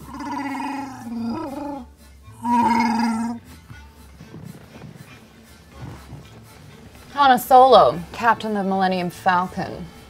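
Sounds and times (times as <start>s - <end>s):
person imitating creature roars: 0.0s - 3.4s
background music: 0.0s - 10.0s.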